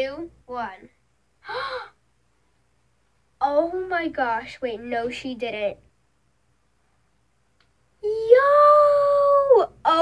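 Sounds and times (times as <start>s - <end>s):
girl gasping: 1.4s - 2.0s.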